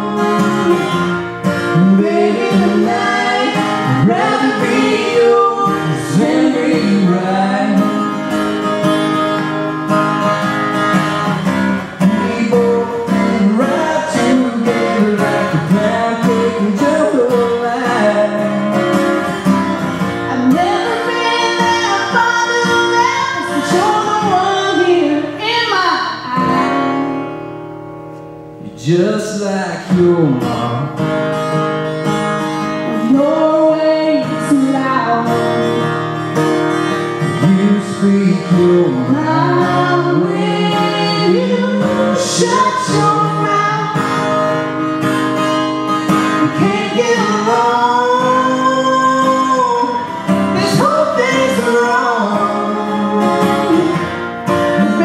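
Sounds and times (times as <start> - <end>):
woman singing country song: 0.0 - 27.4, 32.5 - 55.0
strummed acoustic guitar: 0.0 - 55.0.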